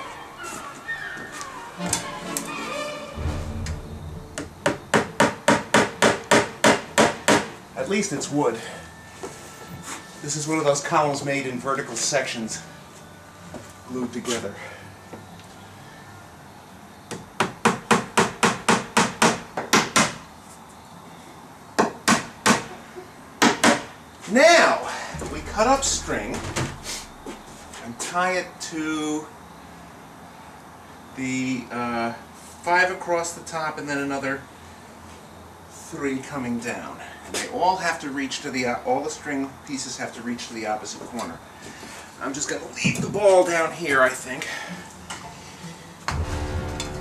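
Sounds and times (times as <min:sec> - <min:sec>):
hammer hitting nail into wood: 0:04.7 - 0:07.5, 0:17.1 - 0:20.2, 0:23.4 - 0:23.9.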